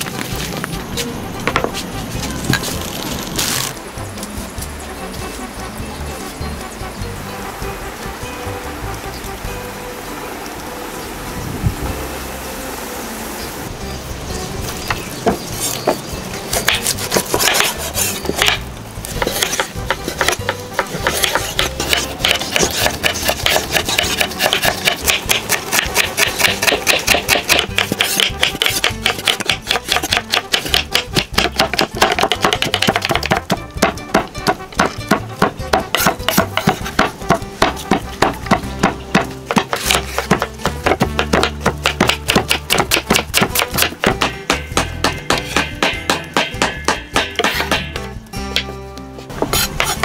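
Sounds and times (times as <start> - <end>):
background music: 0.0 - 50.0
cleaver chopping on wooden board: 15.2 - 48.7, 49.4 - 50.0.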